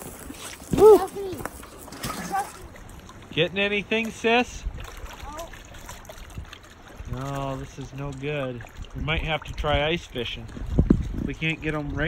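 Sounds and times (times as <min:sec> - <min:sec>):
waves lapping against rocks: 0:00.0 - 0:12.0
wind rumbling on microphone: 0:08.6 - 0:12.0.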